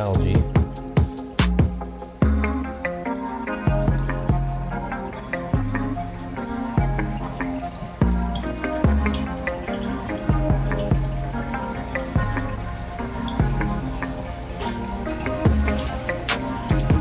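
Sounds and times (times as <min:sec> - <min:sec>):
electronic music with plucked notes: 0:00.0 - 0:17.0.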